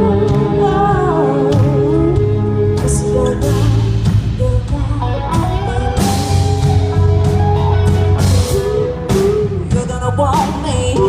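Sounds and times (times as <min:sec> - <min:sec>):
country-rock band playing: 0:00.0 - 0:11.0.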